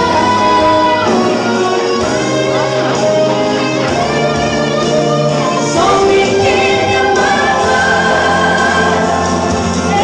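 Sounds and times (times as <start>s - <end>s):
woman singing gospel song: 0.0s - 1.5s, 5.6s - 10.0s
instrumental accompaniment: 0.0s - 10.0s.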